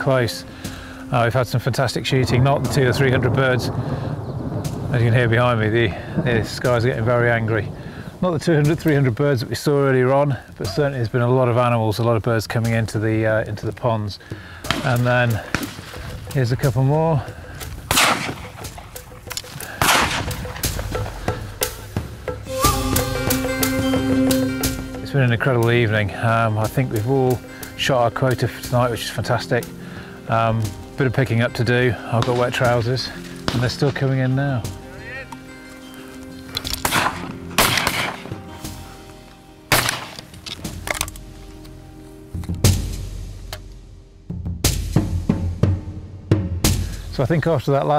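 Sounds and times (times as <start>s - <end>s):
ticking beat: 14.8s - 39.2s
music with held tones: 16.3s - 46.0s
shotgun shot echoing: 17.9s - 18.7s, 19.8s - 21.1s, 36.8s - 38.3s, 39.7s - 40.2s.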